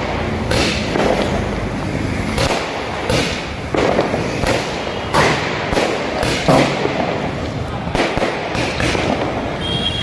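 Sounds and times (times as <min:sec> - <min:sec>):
continuous noisy haze: 0:00.0 - 0:10.0
firecrackers banging: 0:00.0 - 0:10.0.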